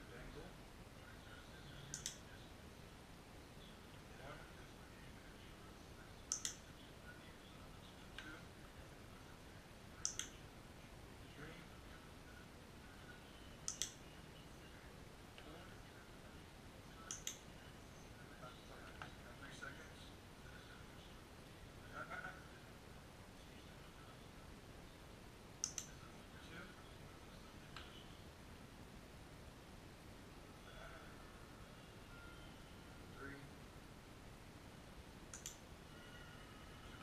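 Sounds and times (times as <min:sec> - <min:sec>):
sharp light clicks: 0:01.9 - 0:02.3, 0:06.3 - 0:06.6, 0:10.0 - 0:10.4, 0:13.6 - 0:14.0, 0:17.1 - 0:17.4, 0:25.6 - 0:26.0, 0:35.3 - 0:35.6.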